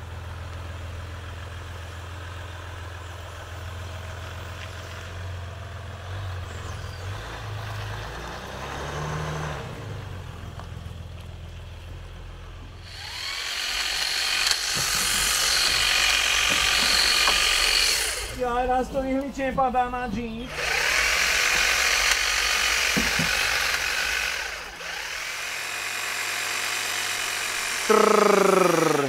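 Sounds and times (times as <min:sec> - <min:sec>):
diesel engine running low: 0:00.0 - 0:14.0, 0:27.1 - 0:29.0
hedge trimmer high-pitched whir: 0:12.8 - 0:18.4, 0:20.5 - 0:29.0.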